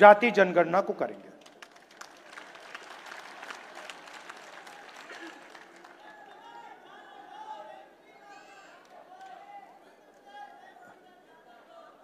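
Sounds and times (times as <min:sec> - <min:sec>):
audience applauding: 0:01.4 - 0:06.8.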